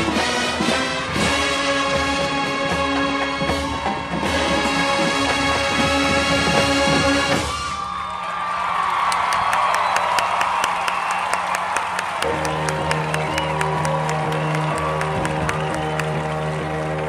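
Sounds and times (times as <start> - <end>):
marching band playing: 0.0 - 7.9, 12.2 - 17.0
crowd cheering: 0.2 - 17.0
applause: 7.8 - 17.0.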